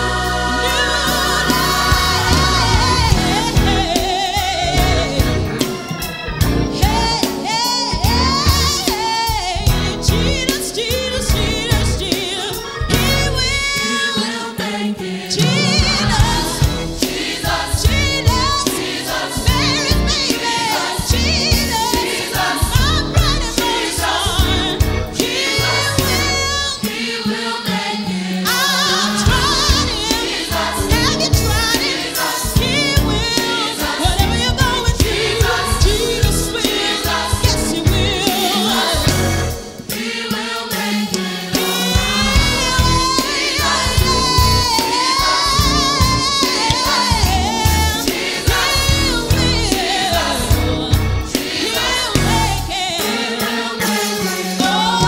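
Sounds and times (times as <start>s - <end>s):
gospel choir singing: 0.0s - 55.0s
instrumental backing with beat: 29.3s - 55.0s.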